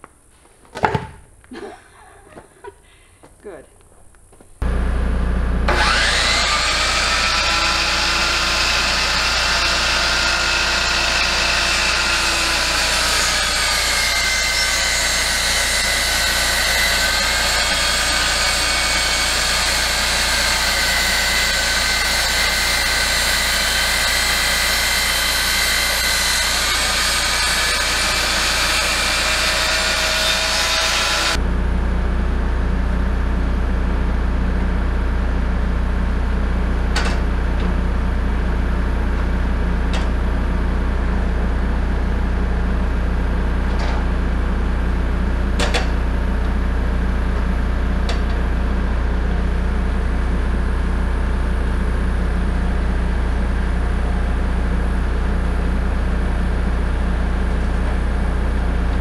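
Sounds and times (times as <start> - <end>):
miter saw cutting wood: 5.7 - 31.4
steady low rumble: 31.4 - 45.5.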